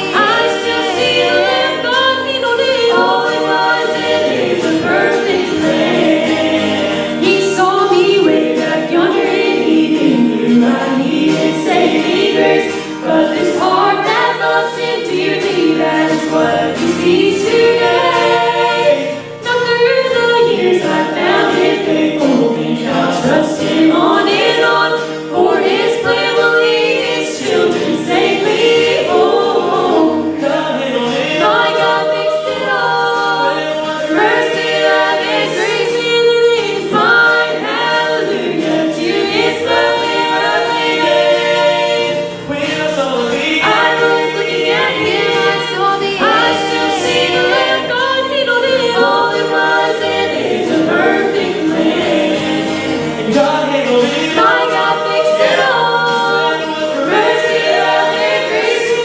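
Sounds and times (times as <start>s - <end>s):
acoustic guitar: 0.0s - 59.0s
vocal group singing in harmony: 0.0s - 59.0s.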